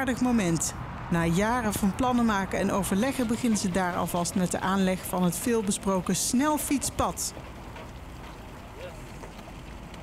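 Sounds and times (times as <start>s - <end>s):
tractor engine rumbling: 0.0s - 10.0s.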